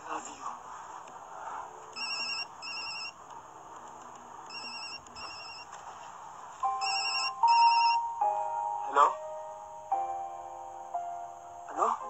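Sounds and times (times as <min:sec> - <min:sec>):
mobile phone ringing: 0:01.9 - 0:03.2, 0:04.5 - 0:05.8, 0:06.6 - 0:08.4
held musical tones: 0:06.6 - 0:11.8.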